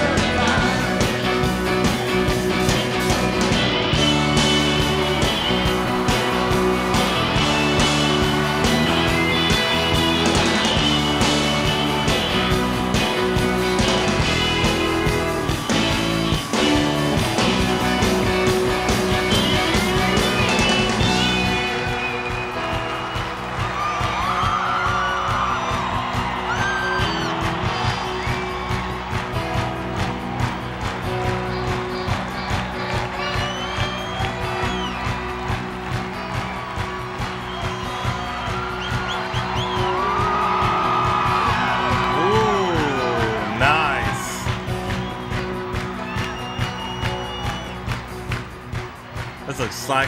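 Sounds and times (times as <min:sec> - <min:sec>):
live rock band music: 0:00.0 - 0:50.0.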